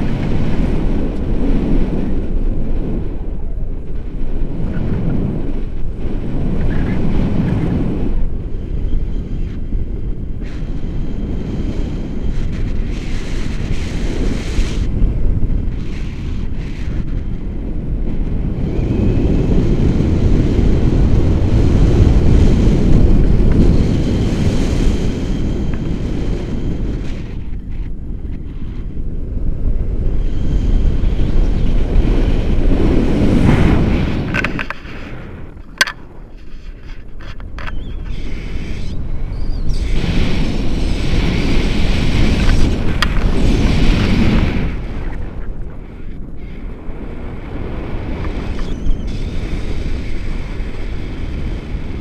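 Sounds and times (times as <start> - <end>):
wind rumbling on microphone: 0.0 - 52.0.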